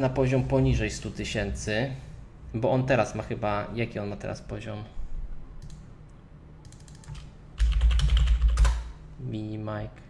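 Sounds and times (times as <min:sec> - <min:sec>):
keyboard typing: 0:06.6 - 0:09.0.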